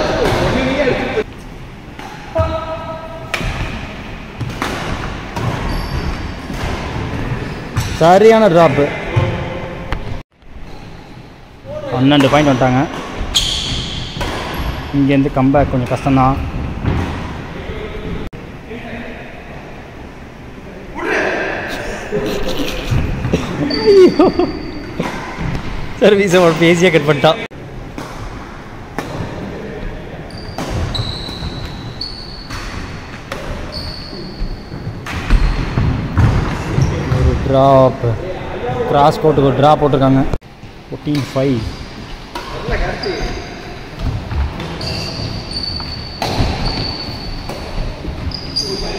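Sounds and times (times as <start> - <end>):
shoes squeaking on floor: 5.4 - 8.0, 10.6 - 11.4, 12.4 - 14.9, 22.6 - 25.6, 30.3 - 37.4, 42.4 - 48.9.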